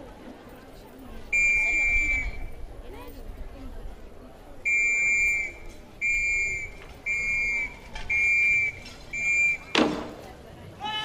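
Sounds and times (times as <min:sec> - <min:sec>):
high-pitched whistle blasts: 0:01.3 - 0:02.5, 0:04.7 - 0:09.8.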